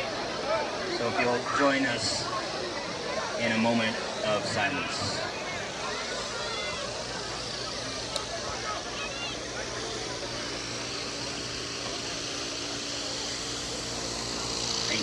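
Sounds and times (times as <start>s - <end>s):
faint murmured voices: 0.0s - 15.0s.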